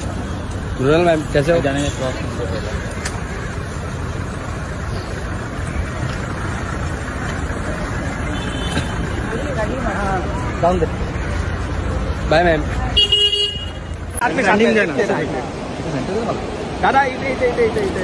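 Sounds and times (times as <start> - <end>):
street traffic: 0.0 - 18.0
people talking: 5.0 - 13.1.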